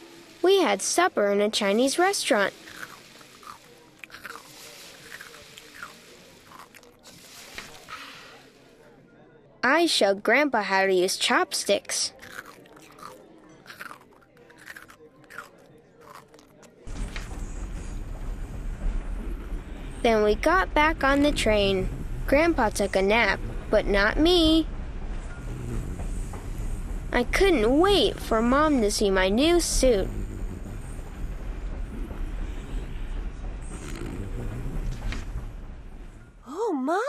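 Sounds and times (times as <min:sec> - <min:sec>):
moving train low noise: 0:00.0 - 0:09.0, 0:16.8 - 0:36.6
chewing and crunching: 0:01.8 - 0:08.1, 0:12.1 - 0:17.4.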